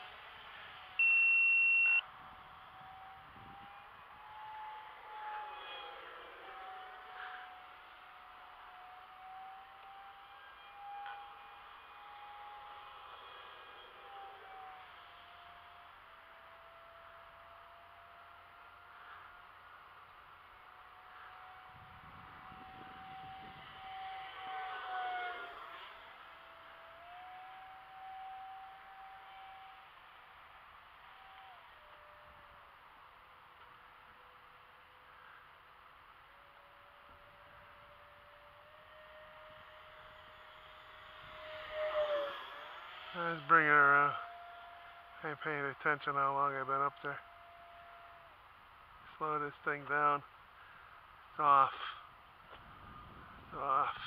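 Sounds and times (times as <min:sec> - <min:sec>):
distant jet fan whine: 0:00.0 - 0:54.0
loud high beep: 0:01.0 - 0:02.0.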